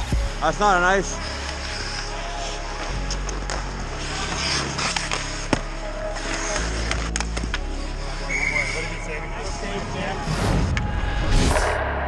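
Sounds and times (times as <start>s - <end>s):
background music: 0.0s - 12.0s
skates scraping on ice: 0.8s - 10.9s
hockey sticks clacking: 1.0s - 9.0s.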